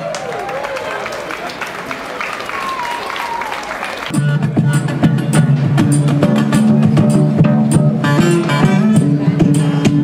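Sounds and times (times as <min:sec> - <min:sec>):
audience applause: 0:00.0 - 0:04.1
audience voices: 0:00.0 - 0:07.4
deep bass notes: 0:04.1 - 0:10.0.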